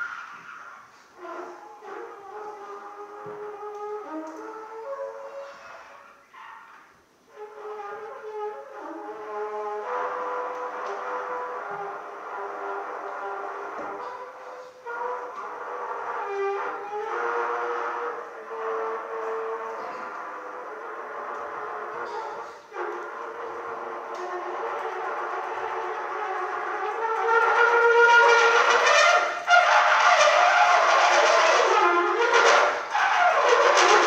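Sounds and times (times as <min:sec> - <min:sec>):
solo trumpet: 0:00.0 - 0:06.6, 0:07.2 - 0:34.0.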